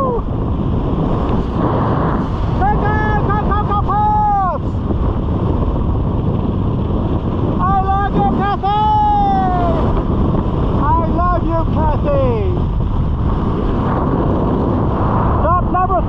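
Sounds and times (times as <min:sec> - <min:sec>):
man whooping: 0:00.0 - 0:00.3, 0:02.7 - 0:04.6, 0:07.7 - 0:09.9
wind rushing over microphone: 0:00.0 - 0:16.0.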